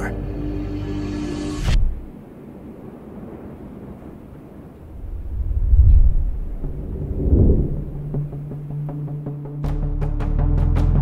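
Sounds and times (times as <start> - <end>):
heavy booms: 4.8 - 8.5
deep cinematic rumble: 4.8 - 8.9.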